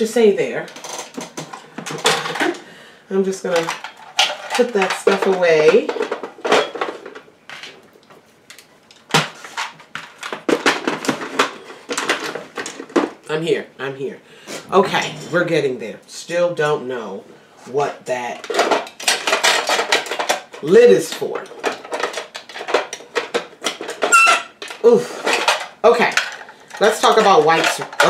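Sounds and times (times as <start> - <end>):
plastic items clattering: 0.0 - 13.5, 18.1 - 28.0.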